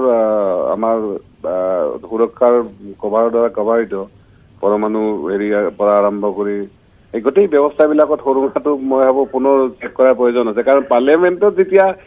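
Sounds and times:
man talking over telephone: 0.0s - 12.0s.

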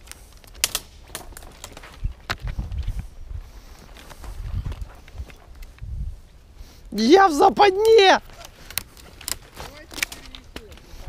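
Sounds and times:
twigs snapping: 0.0s - 3.0s, 7.7s - 11.0s
twigs and branches scraping and cracking: 0.0s - 11.0s.

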